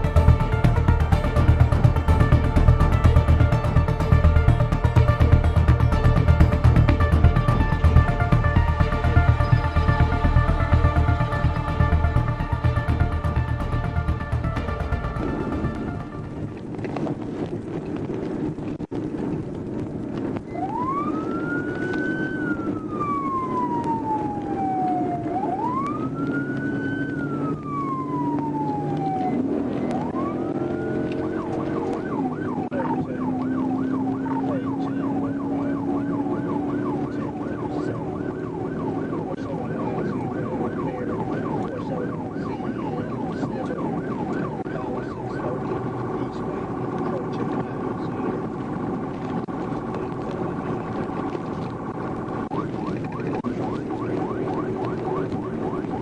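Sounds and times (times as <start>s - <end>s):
police siren wailing and yelping: 0.0s - 17.0s, 20.3s - 56.0s
car engine and road noise: 0.0s - 56.0s.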